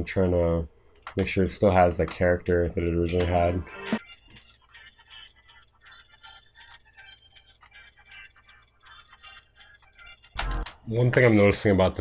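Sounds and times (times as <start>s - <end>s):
hip hop beat from headphones: 1.8s - 11.4s.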